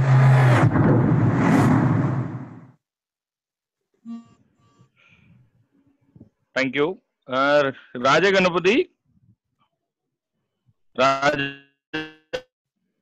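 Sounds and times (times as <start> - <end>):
deep hum: 0.0 - 2.7
loud rushing noise: 0.0 - 2.7
faint short tones: 4.0 - 5.2.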